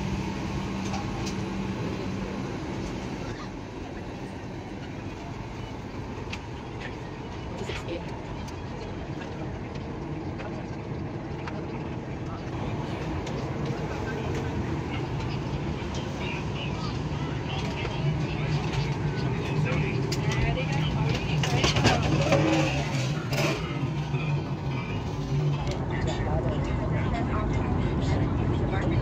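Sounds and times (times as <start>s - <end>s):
cabin air system hum: 0.0s - 29.0s
passenger chatter: 0.0s - 29.0s.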